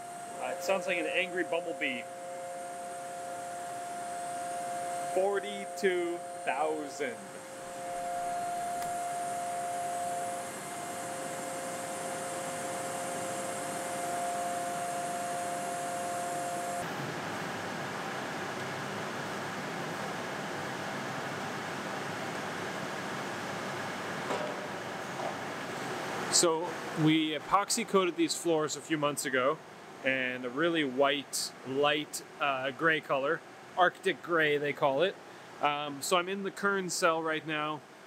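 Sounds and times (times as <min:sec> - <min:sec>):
mill spindle whining: 0:00.0 - 0:16.9
broad machine noise: 0:00.0 - 0:38.0.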